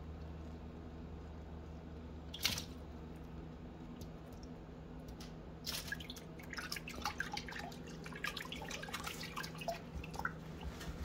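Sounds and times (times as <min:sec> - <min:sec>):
small water splashes and drips: 0:02.3 - 0:02.8, 0:03.9 - 0:10.8.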